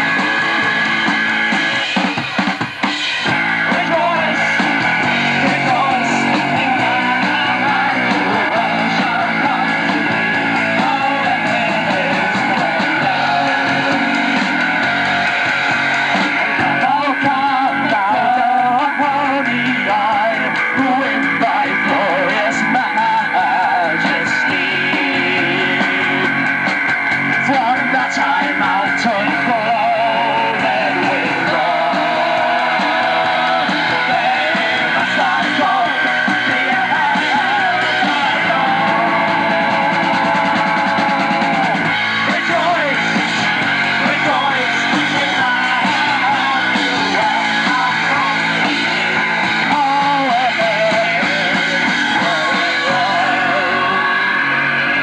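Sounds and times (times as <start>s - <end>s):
drums: 0.0s - 55.0s
electric guitar: 0.0s - 55.0s
person singing: 3.2s - 15.4s, 16.2s - 26.4s, 27.4s - 55.0s.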